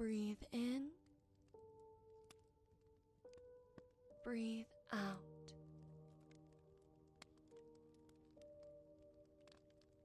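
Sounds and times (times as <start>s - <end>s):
fireplace crackles: 0.0s - 10.0s
soft music of long held tones: 0.0s - 10.0s.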